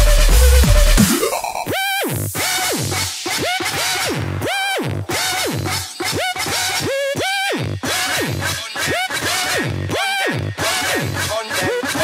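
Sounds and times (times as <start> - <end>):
dubstep synth note sweeping in pitch: 0.0 - 2.3.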